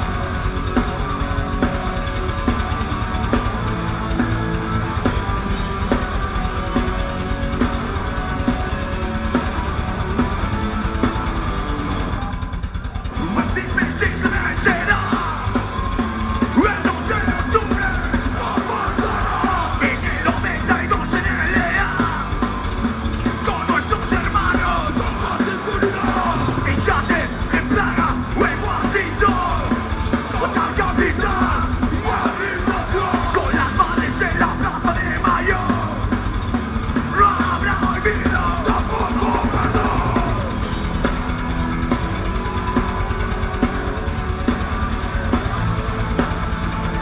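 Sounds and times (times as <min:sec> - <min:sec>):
bass: 0:00.0 - 0:47.0
distorted electric guitars: 0:00.0 - 0:47.0
drums: 0:00.0 - 0:47.0
hard rock band playing: 0:00.0 - 0:47.0.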